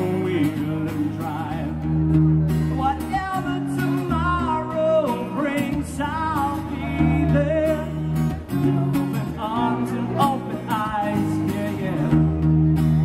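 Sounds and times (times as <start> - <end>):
man singing: 0.0 - 12.7
acoustic guitar strumming chords: 0.0 - 13.0.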